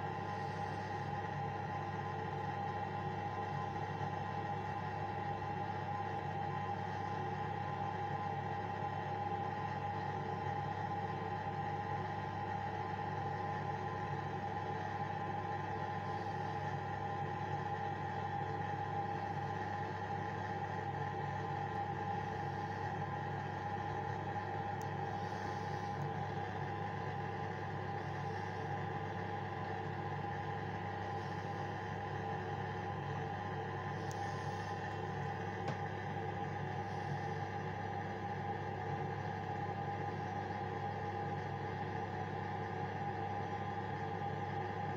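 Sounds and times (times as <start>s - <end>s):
steady machine hum: 0.0s - 44.9s.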